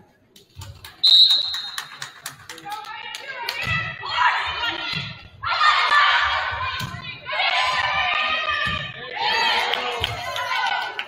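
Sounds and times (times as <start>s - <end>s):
referee's whistle: 1.0s - 2.0s.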